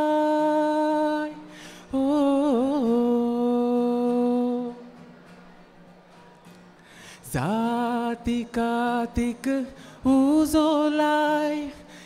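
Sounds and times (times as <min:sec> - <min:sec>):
faint acoustic guitar: 0:00.0 - 0:12.0.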